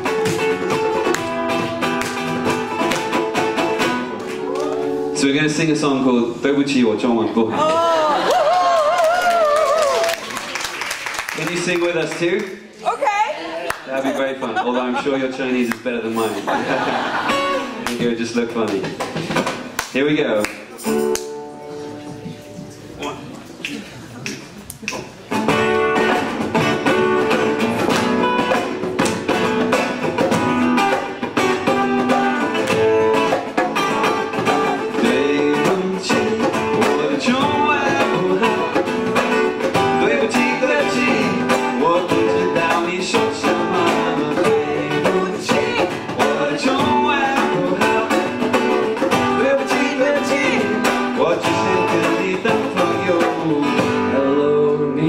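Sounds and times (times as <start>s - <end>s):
strummed acoustic guitar: 0.0s - 6.3s, 20.6s - 23.3s, 25.2s - 55.0s
acoustic rock band playing: 0.0s - 12.0s, 13.8s - 55.0s.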